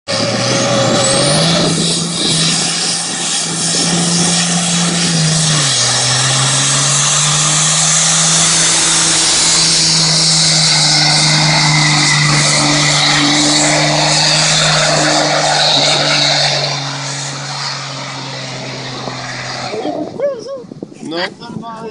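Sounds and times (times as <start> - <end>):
diesel engine at high revs: 0.0 - 21.0.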